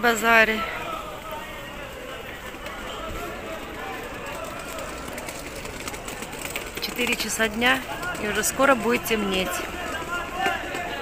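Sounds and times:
faint distant voices: 0:00.0 - 0:11.0
street background noise: 0:00.0 - 0:11.0.

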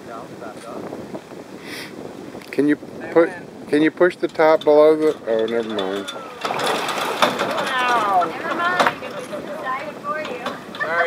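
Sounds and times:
water splashing off a boat: 0:00.0 - 0:11.0
excited voices: 0:05.6 - 0:06.7, 0:07.4 - 0:11.0.

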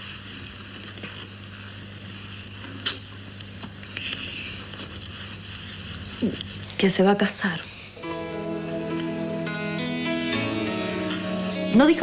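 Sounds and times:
steady hiss with low hum: 0:00.0 - 0:12.0.

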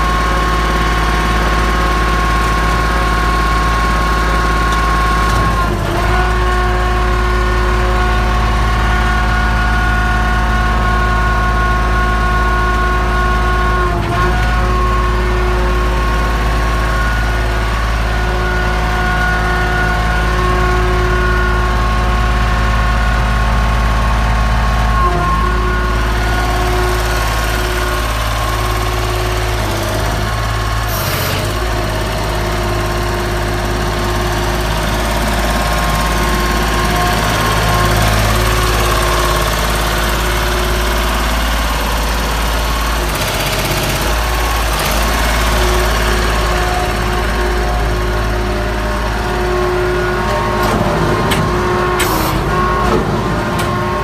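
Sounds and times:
engine idling: 0:00.0 - 0:54.0.

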